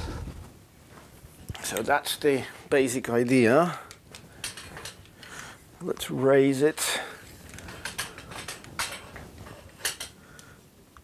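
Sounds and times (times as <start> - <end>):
light mechanical rattling: 6.8 - 10.2.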